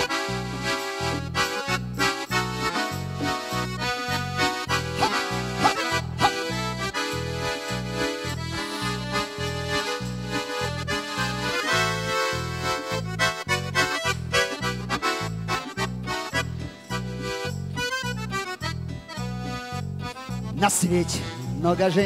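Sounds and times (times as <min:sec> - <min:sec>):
pumping bass beat: 0:00.0 - 0:19.4
accordion playing dance-pop: 0:00.0 - 0:22.0.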